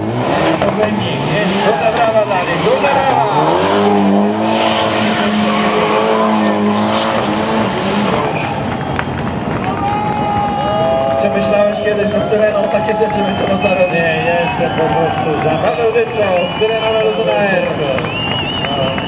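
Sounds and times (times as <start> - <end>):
rally car engine revving: 0.0 - 9.7
tyres squealing on asphalt: 0.0 - 19.0.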